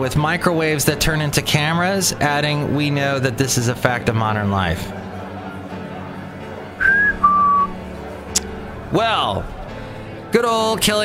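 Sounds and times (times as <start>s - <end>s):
falling whistled notes: 6.8s - 7.8s.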